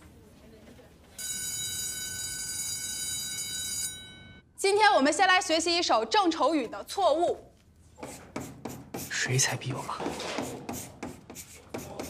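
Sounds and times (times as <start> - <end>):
school bell ringing: 1.2 - 4.4.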